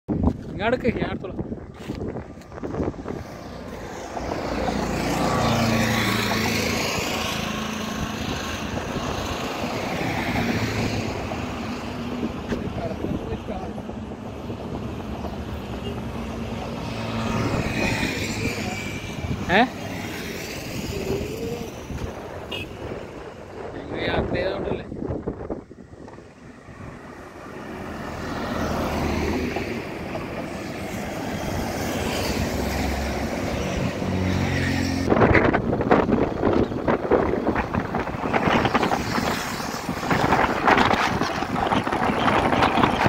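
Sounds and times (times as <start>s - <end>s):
highway traffic passing: 0.1s - 43.0s.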